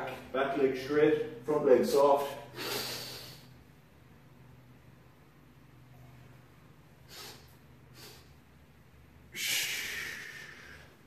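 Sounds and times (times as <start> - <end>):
man breathing: 2.5 - 3.7, 7.0 - 8.5, 9.3 - 11.0.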